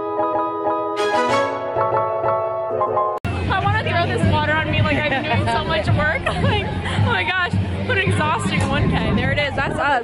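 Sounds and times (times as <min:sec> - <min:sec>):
music playing underneath: 0:00.0 - 0:10.0.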